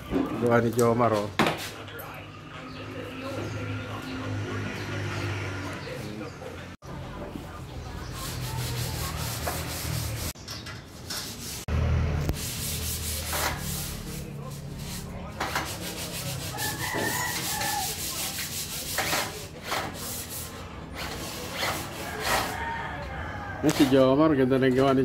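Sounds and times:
scraping on steel frame: 8.2 - 11.7, 12.3 - 22.8.

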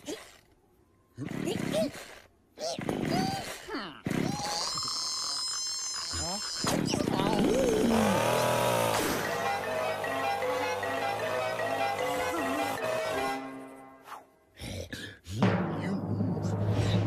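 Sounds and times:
cartoon characters grunting and jabbering: 0.0 - 0.5, 1.1 - 9.2, 11.1 - 13.4
chainsaw running: 7.5 - 12.8.

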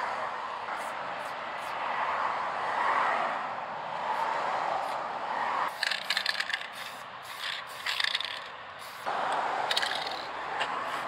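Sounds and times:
spray can ball rattling: 5.7 - 9.1, 9.7 - 10.3
spray can hissing: 5.7 - 9.1, 9.7 - 10.3.

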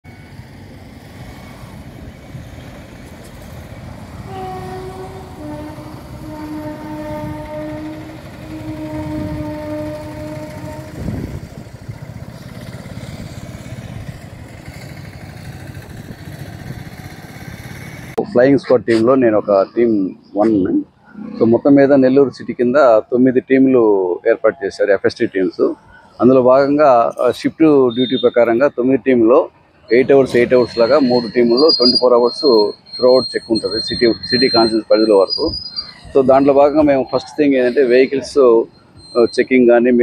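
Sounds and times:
road traffic rumble: 0.0 - 40.0
vehicle horn blasts: 4.2 - 11.5.

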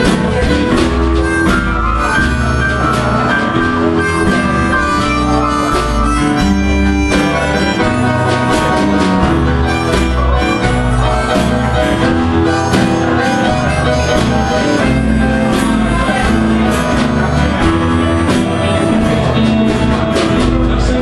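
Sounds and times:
harmonica melody: 0.0 - 21.0
plucked upright bass: 0.0 - 21.0
strummed acoustic guitar: 0.0 - 21.0.

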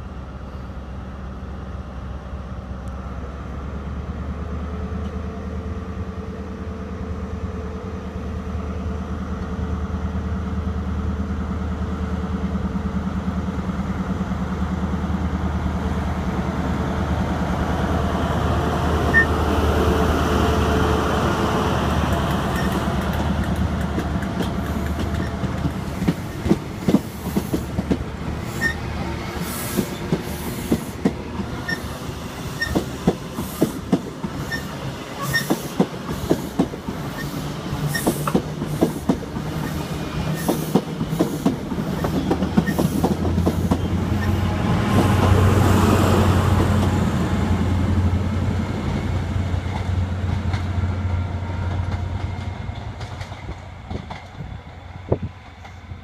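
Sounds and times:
train rumbling past: 0.0 - 56.0.

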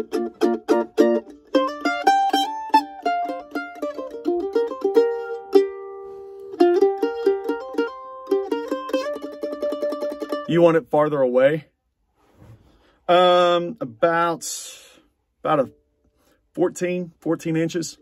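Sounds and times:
mandolin playing: 0.0 - 10.8.

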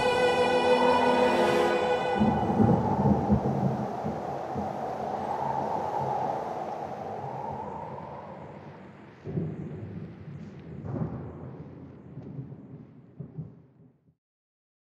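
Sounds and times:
rolling thunder: 0.0 - 13.6.

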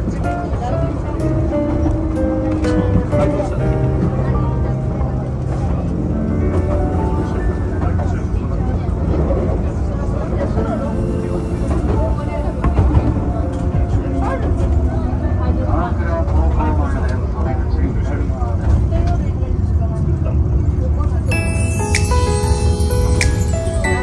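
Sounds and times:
electric train rumbling: 0.0 - 24.0
people talking: 0.0 - 24.0.

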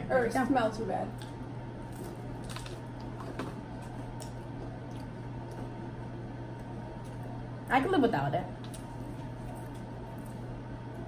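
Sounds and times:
steady low hum: 0.0 - 11.0
cracker crunching: 1.1 - 7.4, 8.6 - 11.0.

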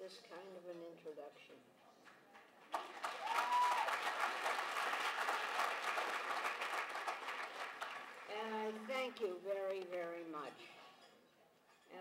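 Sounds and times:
audience applauding: 2.7 - 9.1.

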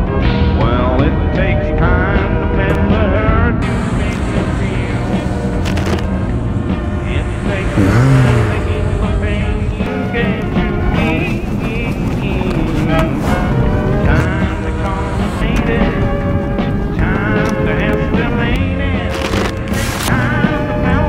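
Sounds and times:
country song: 0.0 - 21.0.

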